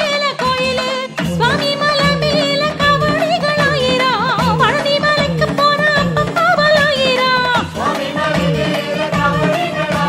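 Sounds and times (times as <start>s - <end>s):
rhythmic accompaniment: 0.0s - 10.0s.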